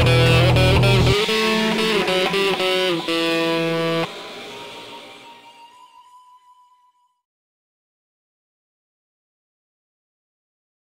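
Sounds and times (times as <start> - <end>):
distorted electric guitar chord: 0.0 - 5.5.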